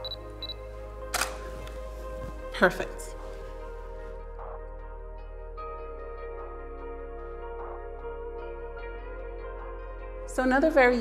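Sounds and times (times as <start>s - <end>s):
background music: 0.0s - 11.0s
camera shutter click: 1.1s - 1.8s.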